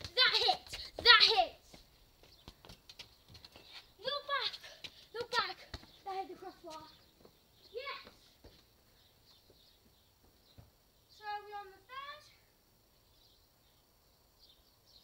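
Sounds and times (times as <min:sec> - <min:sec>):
child calling out: 0:11.3 - 0:12.4.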